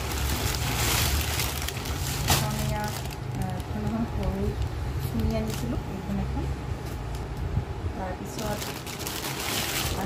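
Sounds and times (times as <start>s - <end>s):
plastic bag crinkling: 0.0s - 6.0s, 8.2s - 10.0s
steady low hum: 0.0s - 10.0s.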